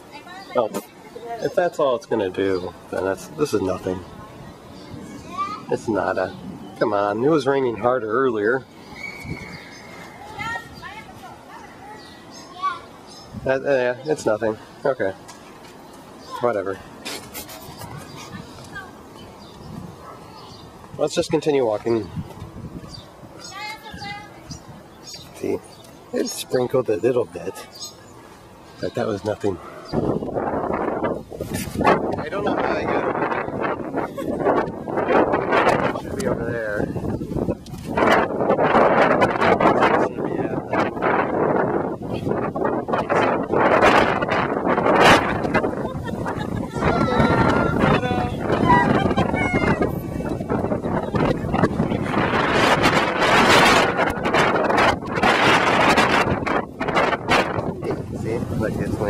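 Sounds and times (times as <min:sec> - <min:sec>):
people talking: 0:00.0 - 0:04.6, 0:25.3 - 0:27.7, 0:31.8 - 0:37.0, 0:39.4 - 0:40.9, 0:45.0 - 0:52.7, 0:57.8 - 0:59.0
camera handling rubbing: 0:17.0 - 0:18.4.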